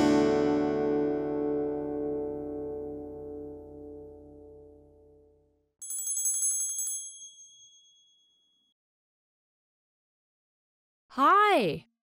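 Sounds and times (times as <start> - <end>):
guitar music: 0.0 - 5.3
small metal bell ringing: 5.8 - 8.7.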